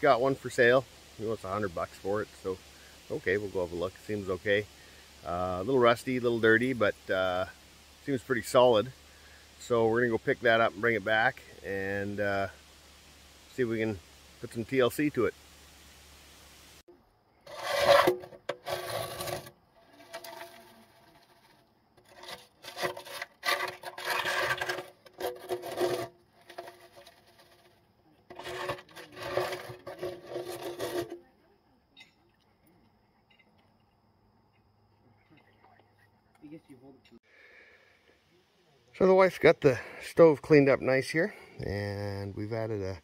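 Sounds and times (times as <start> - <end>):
scraping rust inside metal stove: 17.4 - 31.4.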